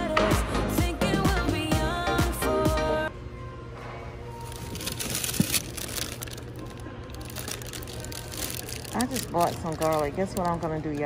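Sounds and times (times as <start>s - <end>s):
faint background music: 0.0s - 11.0s
plastic bag picked up: 4.3s - 11.0s.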